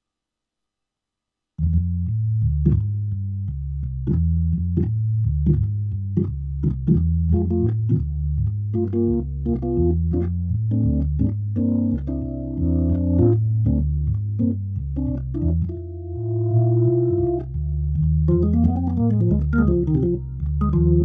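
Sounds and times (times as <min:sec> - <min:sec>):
organ playing slow blues: 0:07.3 - 0:08.0, 0:08.7 - 0:21.0.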